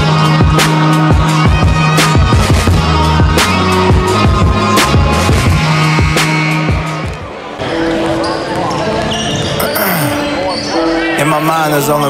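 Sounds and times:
voices in gym: 0:07.4 - 0:12.0.

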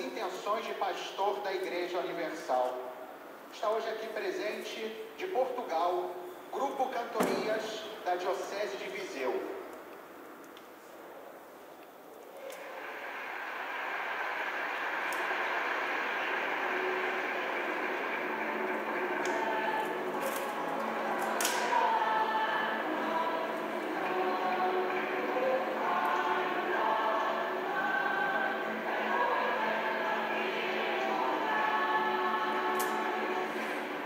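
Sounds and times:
choir singing: 0:12.4 - 0:34.0.

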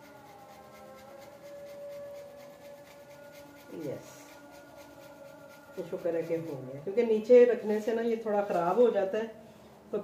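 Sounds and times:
faint electrical hum: 0:02.5 - 0:10.0
woman speaking: 0:05.8 - 0:10.0.

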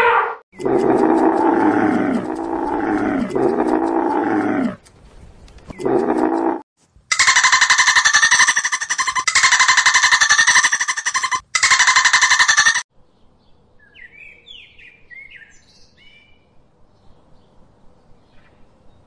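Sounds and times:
dolphin clicks: 0:00.6 - 0:04.8.

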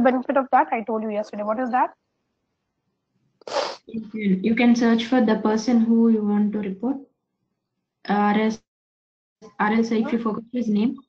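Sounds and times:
person breathing into microphone: 0:03.5 - 0:03.8.

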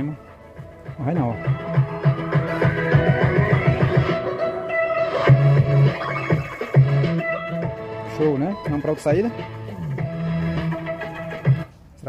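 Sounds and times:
guitar-led music with bass line: 0:00.0 - 0:11.7.

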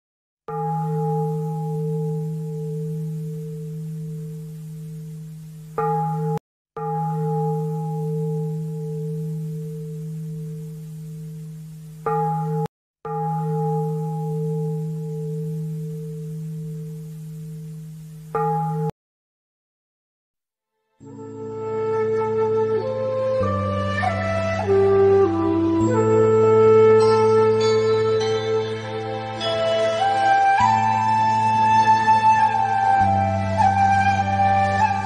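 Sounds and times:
bowl bell ringing: 0:00.5 - 0:18.9, 0:27.0 - 0:31.3.

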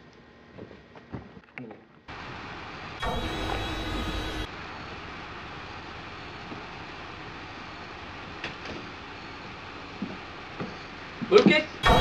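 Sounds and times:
outdoor background rumble: 0:02.0 - 0:12.0.

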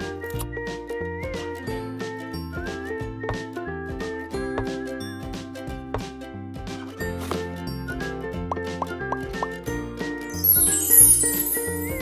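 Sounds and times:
cheerful background music: 0:00.0 - 0:12.0
rising bloop pop effects: 0:10.4 - 0:12.0.

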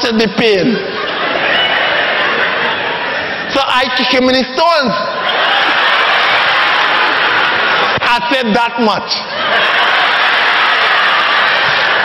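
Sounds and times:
audience applauding and cheering: 0:05.2 - 0:08.4, 0:09.3 - 0:12.0.

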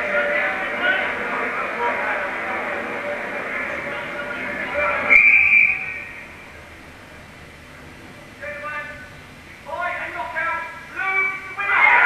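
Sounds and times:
high-pitched whistle: 0:05.1 - 0:06.3.

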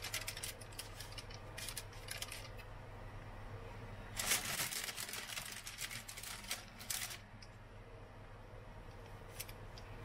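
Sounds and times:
crisp rustles of foil and paper: 0:00.0 - 0:02.6, 0:04.1 - 0:07.3
low steady hum: 0:00.0 - 0:10.0.

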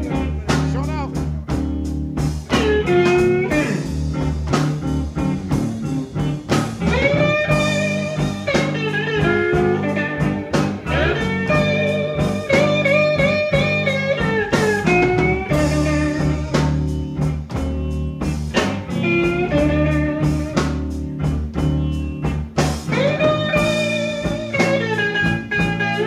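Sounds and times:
bass and drums: 0:00.0 - 0:26.0
electric slide guitar: 0:00.0 - 0:26.0.

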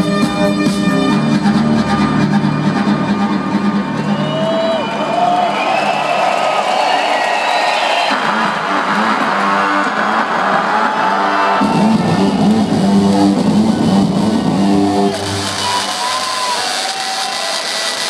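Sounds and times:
crowd noise: 0:00.0 - 0:18.0
live music through sound system: 0:00.0 - 0:18.0.

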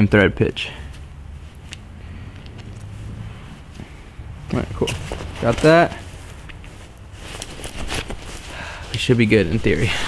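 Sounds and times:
nylon jacket rustling: 0:00.8 - 0:10.0.

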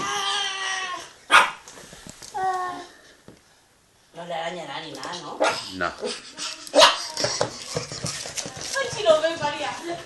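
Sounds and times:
dog claws tapping on wooden floor: 0:07.2 - 0:10.0.

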